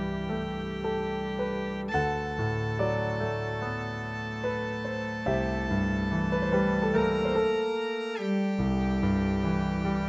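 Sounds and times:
piano accompaniment: 0.0 - 10.0
strings playing melody: 0.0 - 10.0.

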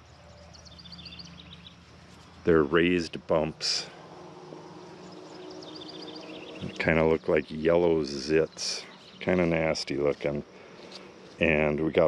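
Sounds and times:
faint high bird chirps: 0.0 - 2.7, 3.8 - 11.8
flying insect buzzing: 1.6 - 9.5.

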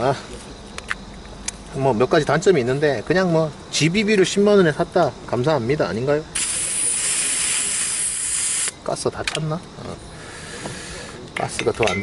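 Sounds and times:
gas hissing into magazine: 6.4 - 8.8.

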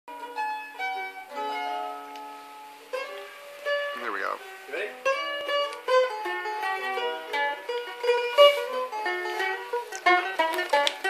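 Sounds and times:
mandolin plucked notes and chords: 0.1 - 11.0.

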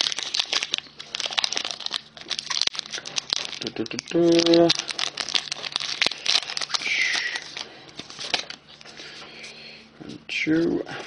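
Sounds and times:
foil wrapper crinkling and tearing: 0.0 - 9.1.

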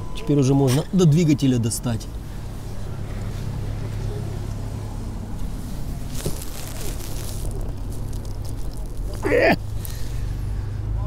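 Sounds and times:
hands rustling and scraping parts: 5.4 - 10.3.

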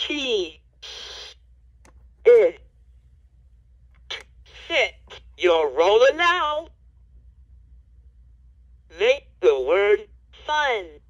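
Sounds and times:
recorded voice from toy speaker: 4.1 - 6.7, 8.9 - 11.0.

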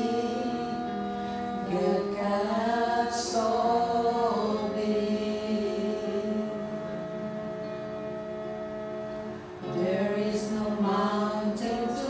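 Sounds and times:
women singing a held gospel chord: 0.0 - 8.8, 9.6 - 12.0.

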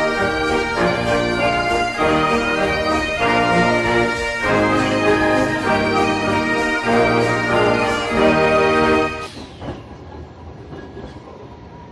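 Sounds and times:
tram running on rails: 0.0 - 11.9.

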